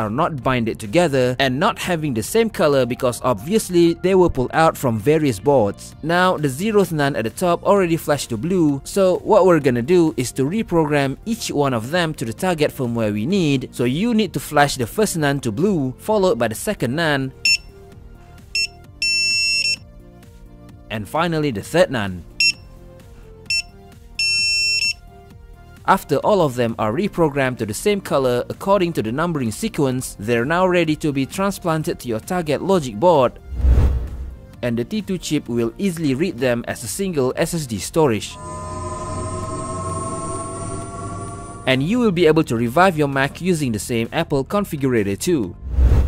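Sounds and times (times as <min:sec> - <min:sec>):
quiet background music: 0:00.0 - 0:45.8
loud electronic beep: 0:38.3 - 0:42.2.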